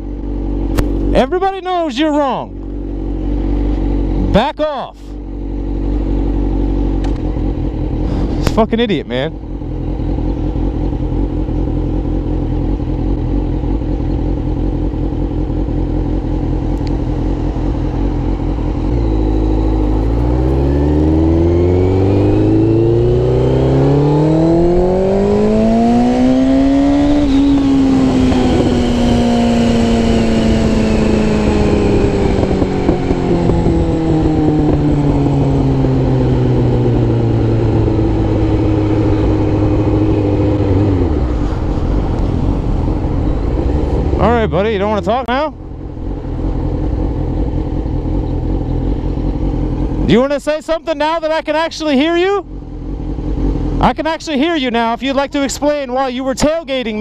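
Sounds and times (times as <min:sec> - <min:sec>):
motorcycle engine revving: 0:00.0 - 0:57.0
wind noise: 0:19.9 - 0:49.2.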